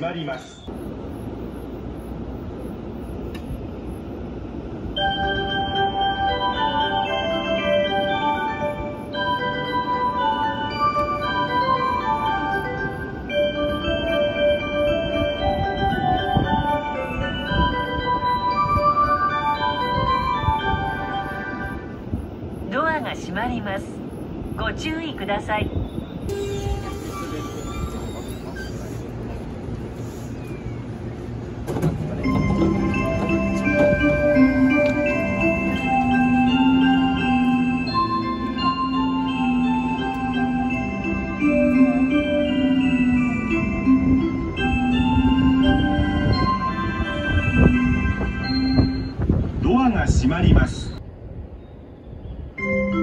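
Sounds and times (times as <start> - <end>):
steady low rumble: 0.6 - 28.0
bell-like melody over speakers: 4.9 - 22.2, 32.2 - 49.6, 52.4 - 53.0
electric train motor whine: 26.3 - 49.3.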